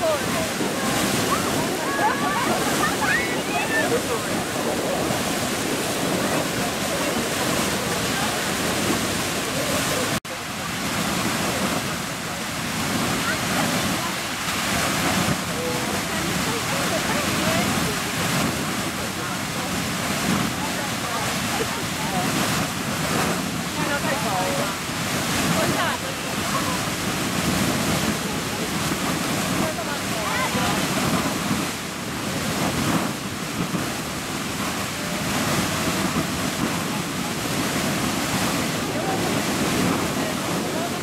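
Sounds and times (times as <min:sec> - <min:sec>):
geyser water rushing and spraying: 0:00.0 - 0:41.0.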